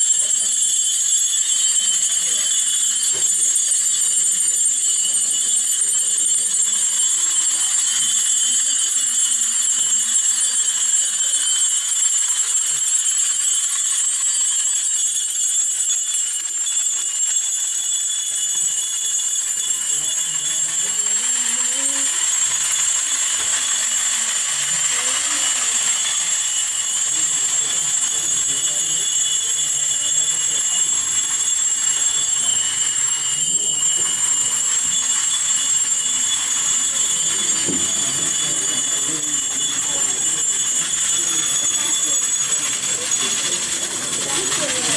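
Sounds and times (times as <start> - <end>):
small metal bells jingling: 0.0 - 44.9.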